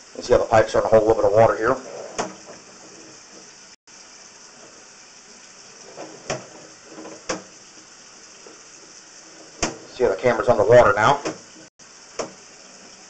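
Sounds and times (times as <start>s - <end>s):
steady hiss of cable: 0.0s - 13.0s.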